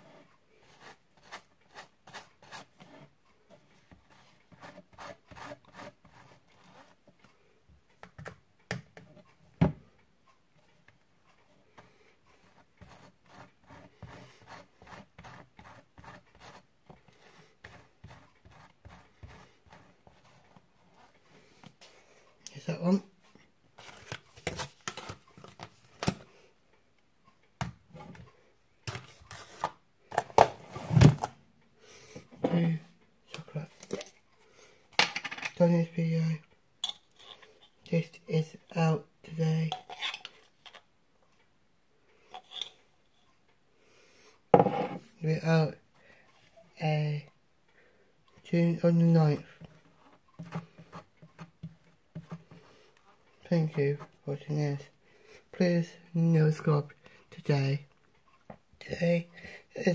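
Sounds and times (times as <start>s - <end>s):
knife scraping bread: 12.4s - 20.4s.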